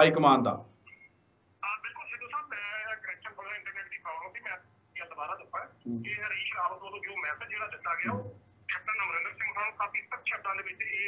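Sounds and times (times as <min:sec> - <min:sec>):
person speaking over telephone line: 0:01.6 - 0:11.0.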